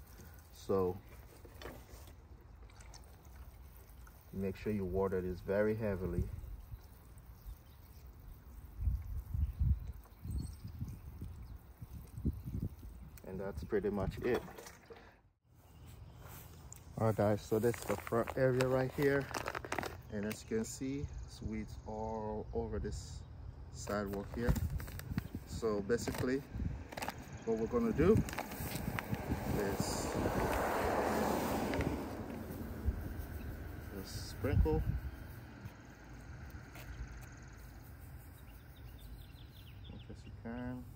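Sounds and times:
water sprinkling onto grass: 0:00.0 - 0:09.4, 0:26.0 - 0:35.6
wind rumble on microphone: 0:08.2 - 0:14.5, 0:23.9 - 0:35.8
vehicle passing: 0:28.0 - 0:38.1.

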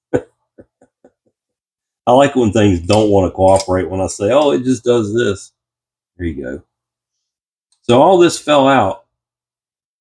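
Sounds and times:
man chuckling: 0:00.0 - 0:01.6.

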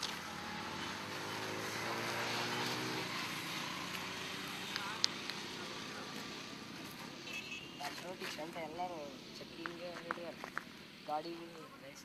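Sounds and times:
vehicle passing by: 0:00.0 - 0:07.2.

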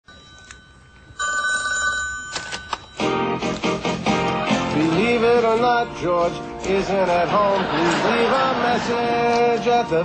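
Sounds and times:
telephone ringing: 0:00.0 - 0:03.4.

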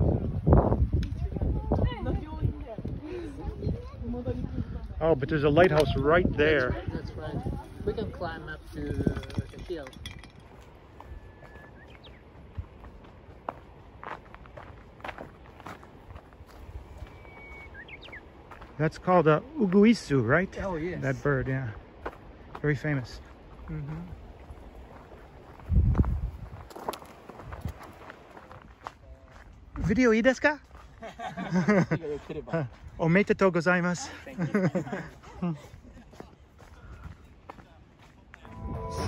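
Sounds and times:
footsteps on dirt trail: 0:10.4 - 0:19.9, 0:20.6 - 0:30.0, 0:30.6 - 0:31.3, 0:32.2 - 0:33.0, 0:34.8 - 0:39.0
bird singing whistle: 0:11.1 - 0:12.2, 0:17.0 - 0:18.2.

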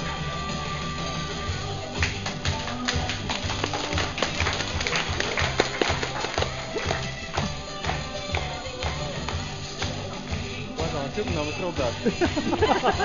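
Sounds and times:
loud rock music: 0:00.0 - 0:13.0.

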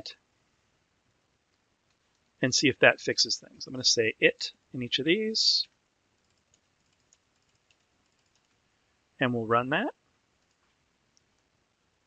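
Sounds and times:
computer keyboard keystrokes: 0:06.2 - 0:08.6.

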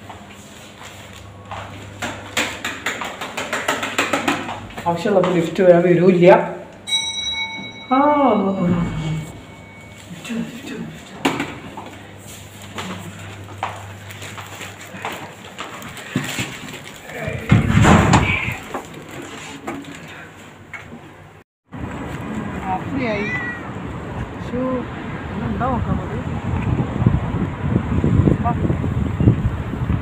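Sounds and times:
scattered clicks and knocks: 0:02.0 - 0:04.8
low steady hum: 0:04.6 - 0:15.0.

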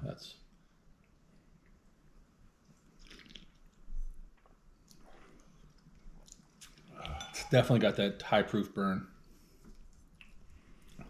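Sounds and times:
slurps and lip smacks: 0:02.6 - 0:06.9, 0:09.6 - 0:11.0.

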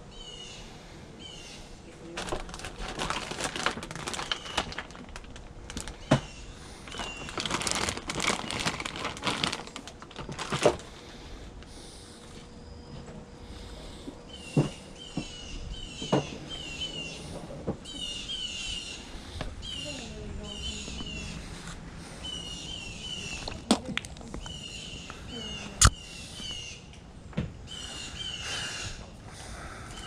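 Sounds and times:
bird chirping: 0:14.3 - 0:21.4, 0:22.1 - 0:23.7, 0:24.4 - 0:26.9.

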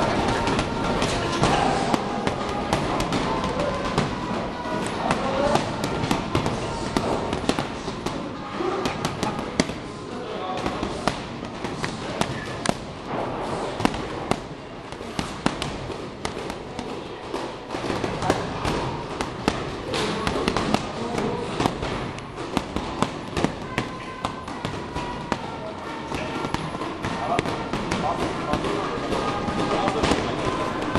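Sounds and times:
gloves hitting punching bags: 0:00.0 - 0:30.9.

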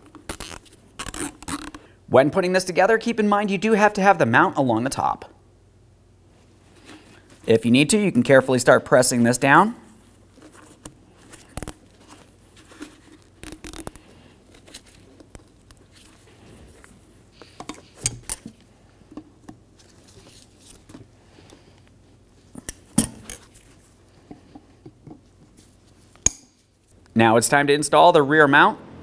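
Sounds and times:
hands clicking and tapping parts: 0:16.8 - 0:19.6.

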